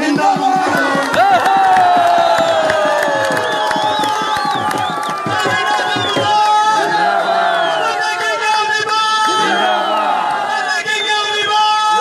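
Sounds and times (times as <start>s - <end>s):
crowd cheering and shouting: 0.0s - 12.0s.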